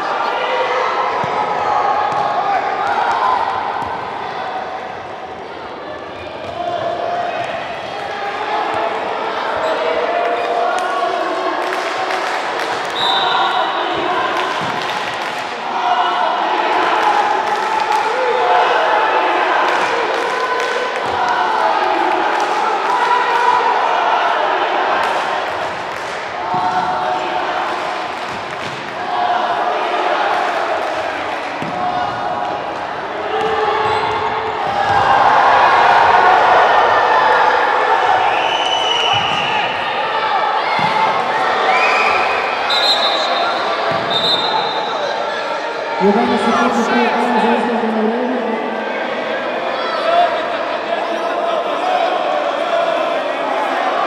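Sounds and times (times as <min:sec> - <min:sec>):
people calling out: 0:46.0 - 0:49.7.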